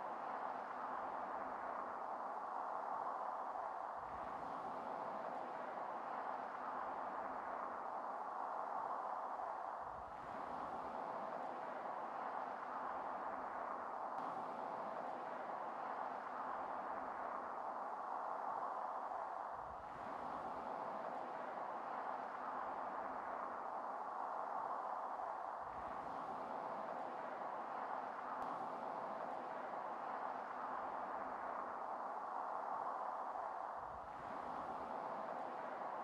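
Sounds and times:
faint ambient drone with hiss: 0.0 - 36.0.

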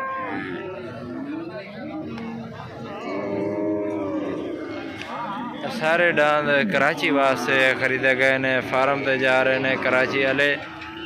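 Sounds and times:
cow mooing: 0.0 - 1.4, 2.4 - 5.6.

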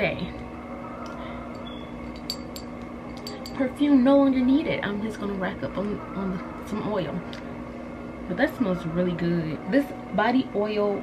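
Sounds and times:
steady low hum: 0.0 - 11.0
glass bottle clinks: 1.6 - 3.6.

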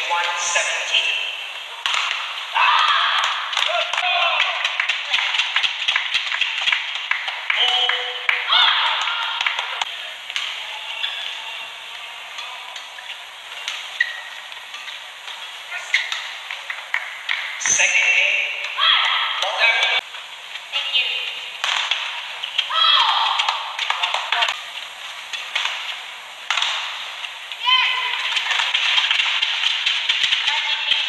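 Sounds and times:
shoes squeaking on court: 13.0 - 16.4.

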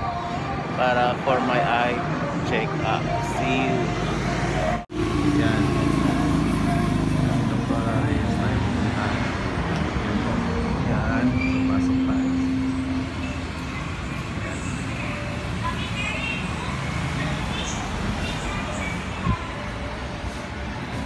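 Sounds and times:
people's voices: 0.0 - 21.0
vehicles running: 0.0 - 21.0.

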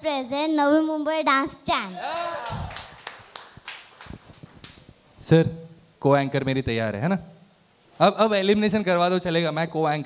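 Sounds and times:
hand claps: 1.8 - 4.9.

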